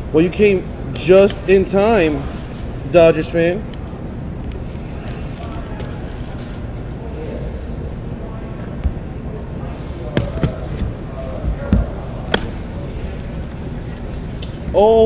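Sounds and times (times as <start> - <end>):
low background noise: 0.0 - 15.0.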